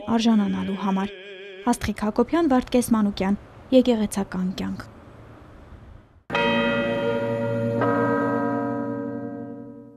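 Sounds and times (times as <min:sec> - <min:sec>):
bell-like chime: 0:06.3 - 0:09.9.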